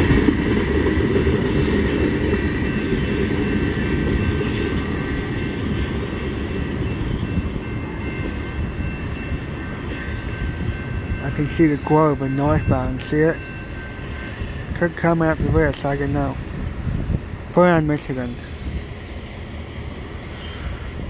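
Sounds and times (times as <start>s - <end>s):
freight train rumbling past: 0.0s - 21.0s.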